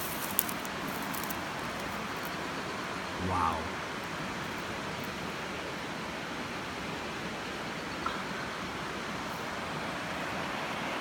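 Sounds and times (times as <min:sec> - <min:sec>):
river rushing: 0:00.0 - 0:11.0.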